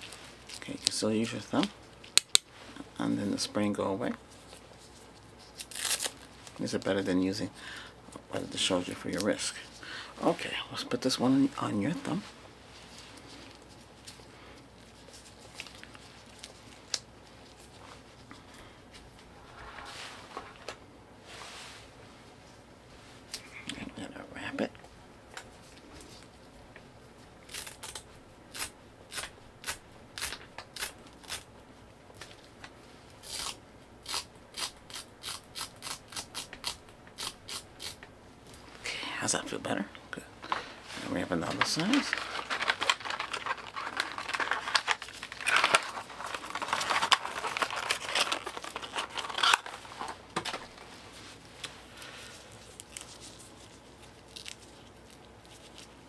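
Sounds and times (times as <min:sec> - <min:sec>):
wrapping crinkling and tearing: 0:04.3 - 0:07.1, 0:12.0 - 0:18.0, 0:27.4 - 0:31.5, 0:40.5 - 0:56.0.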